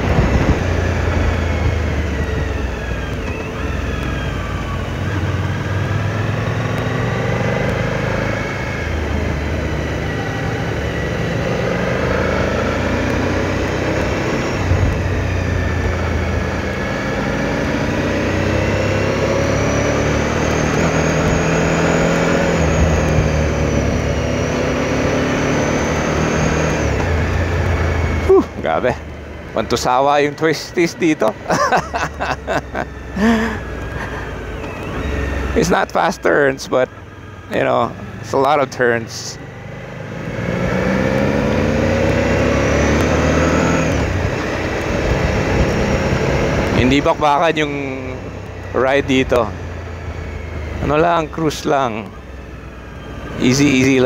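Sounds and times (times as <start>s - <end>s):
motorcycle engine revving: 0.0s - 54.0s
wind and road noise: 0.0s - 54.0s.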